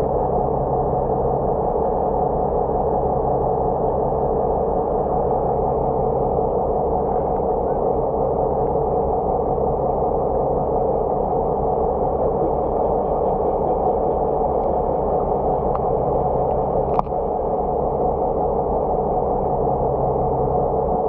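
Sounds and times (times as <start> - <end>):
faint low hum: 0.0 - 21.0
muffled underwater rumble: 0.0 - 21.0.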